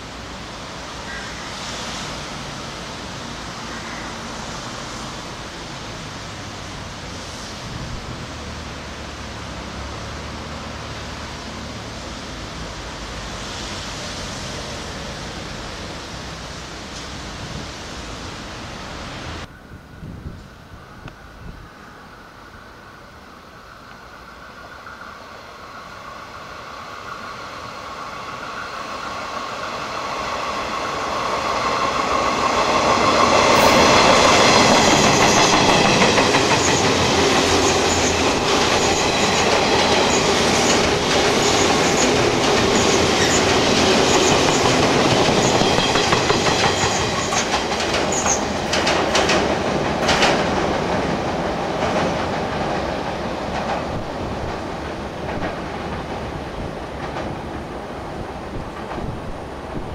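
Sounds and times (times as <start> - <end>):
electric train passing: 0.0 - 59.9
wheels clicking over rail joints: 32.4 - 57.8.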